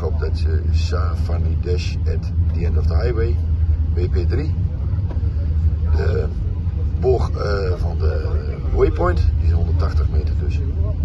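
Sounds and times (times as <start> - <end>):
low engine rumble: 0.0 - 11.0
murmur of voice: 0.0 - 11.0.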